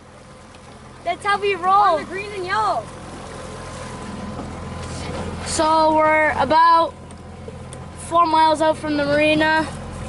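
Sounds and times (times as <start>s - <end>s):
outboard motor humming: 0.0s - 10.0s
water noise: 0.0s - 10.0s
wind: 0.0s - 10.0s.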